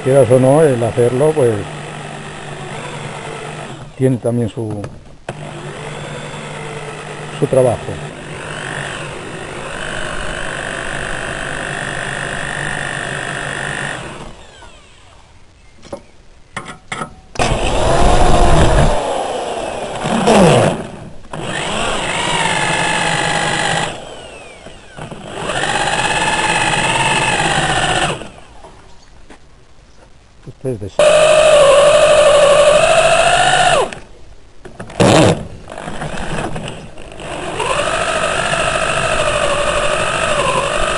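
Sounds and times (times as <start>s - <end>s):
electric drill boring into metal: 0.3s - 4.0s, 5.3s - 15.2s, 17.4s - 28.4s, 31.0s - 34.0s, 35.0s - 40.9s.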